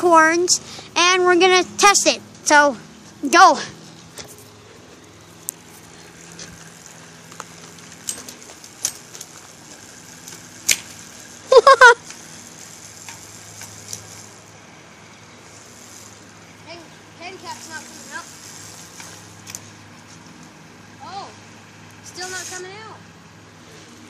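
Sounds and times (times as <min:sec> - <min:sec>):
clicks from spinning bicycle wheel: 0:05.4 - 0:11.4, 0:12.0 - 0:14.3, 0:17.5 - 0:19.7.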